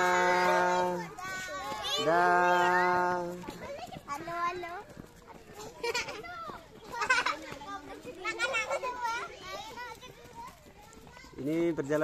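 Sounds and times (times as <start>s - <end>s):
children chattering: 0.0s - 12.0s
children's high-pitched shouts: 0.0s - 12.0s.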